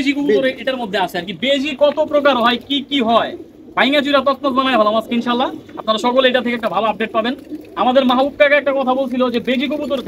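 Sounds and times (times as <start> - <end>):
man talking: 0.0 - 10.0
pigeons cooing: 0.0 - 10.0.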